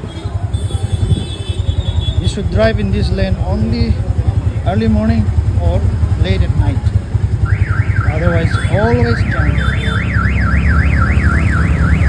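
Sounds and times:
car alarm warbling: 7.4s - 12.0s.

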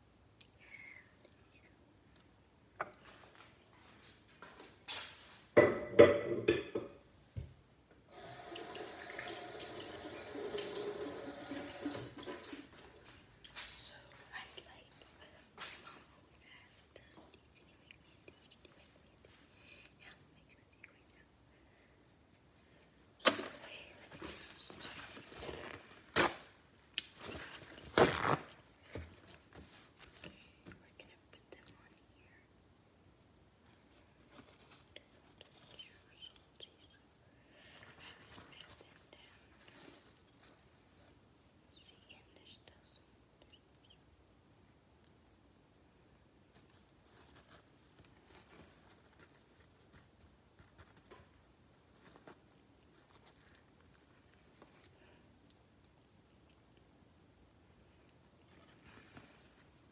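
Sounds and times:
knocks and clatter on counter: 5.6s - 7.0s.

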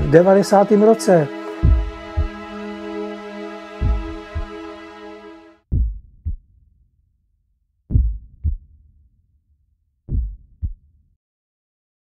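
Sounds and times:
heartbeat thumps: 1.6s - 2.6s, 3.8s - 4.6s, 5.7s - 6.4s, 7.9s - 8.6s, 10.1s - 10.8s.

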